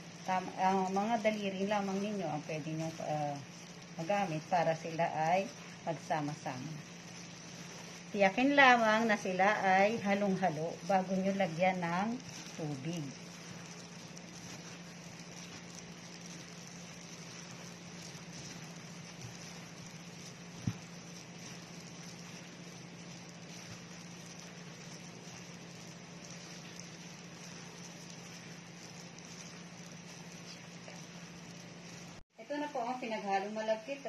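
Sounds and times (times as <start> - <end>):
gloved hands rustling dough: 0.0 - 32.2
steady low hum: 0.0 - 34.0.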